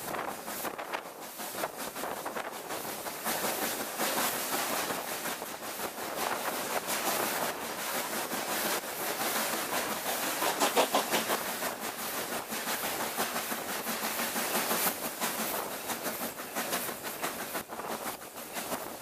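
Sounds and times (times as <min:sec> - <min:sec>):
rush of wind: 0:00.0 - 0:19.0
train track noise: 0:00.0 - 0:19.0.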